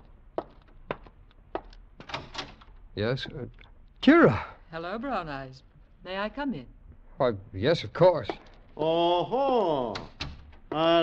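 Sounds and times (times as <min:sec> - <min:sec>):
footsteps: 0:00.0 - 0:01.8
door knocks and rattles: 0:02.0 - 0:02.7
door unlatched and opened: 0:02.0 - 0:02.7.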